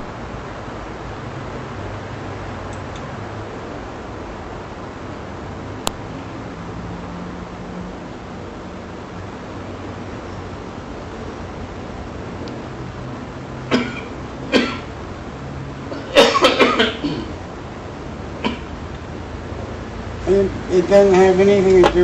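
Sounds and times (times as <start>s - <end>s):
steady background hum: 0.0s - 22.0s
person coughing: 13.7s - 14.9s, 15.9s - 17.4s, 18.4s - 18.7s.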